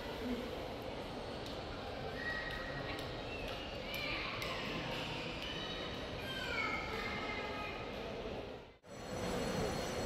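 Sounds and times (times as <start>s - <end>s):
murmur of large hall: 0.0s - 10.0s.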